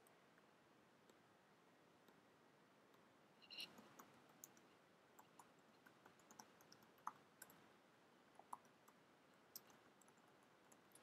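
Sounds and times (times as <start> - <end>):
keyboard typing clicks: 3.5 - 7.6.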